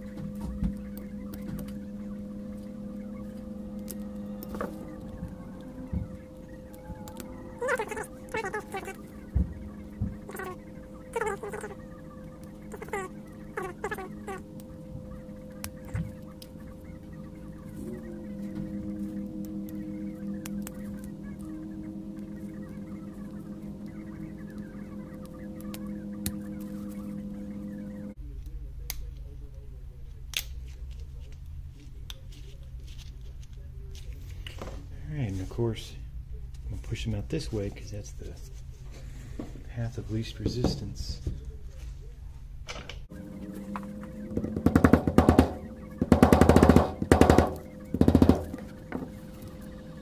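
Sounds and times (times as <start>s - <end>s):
lower hum: 0.0s - 28.8s, 43.0s - 50.0s
machine hum: 0.0s - 28.8s, 43.0s - 50.0s.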